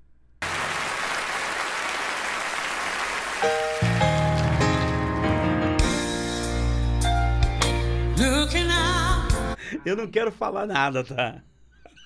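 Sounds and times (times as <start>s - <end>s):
audience applause: 0.4s - 5.5s
piano chords: 3.2s - 9.6s.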